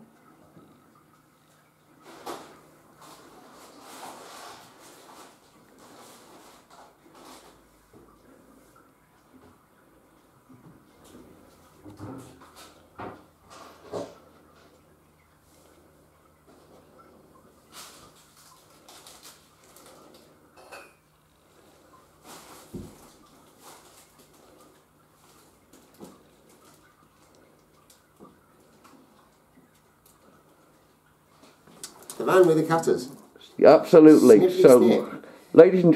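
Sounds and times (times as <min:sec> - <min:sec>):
faint low hum: 0:00.0 - 0:35.9
light knocks and clatter: 0:10.5 - 0:14.8.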